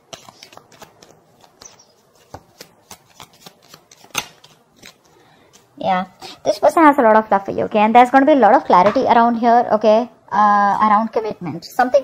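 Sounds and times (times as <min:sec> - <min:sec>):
cards clicking and snapping: 0:00.0 - 0:05.7.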